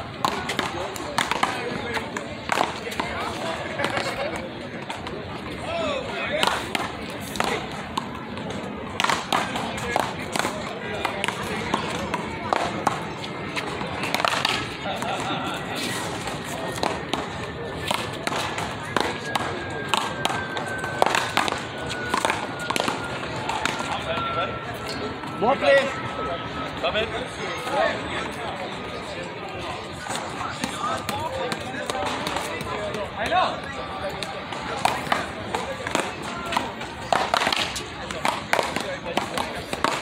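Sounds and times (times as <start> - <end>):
players' voices: 0.0 - 40.0.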